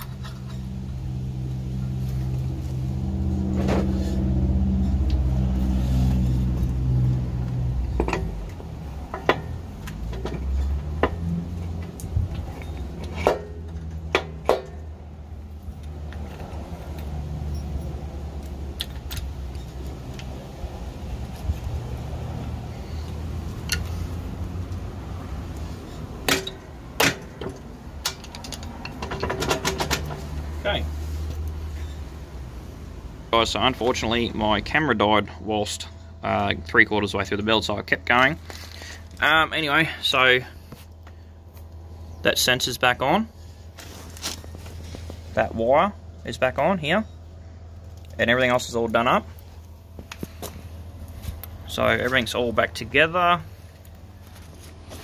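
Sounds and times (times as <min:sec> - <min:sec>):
metal clinks and knocks: 0:07.9 - 0:14.9, 0:26.2 - 0:30.4.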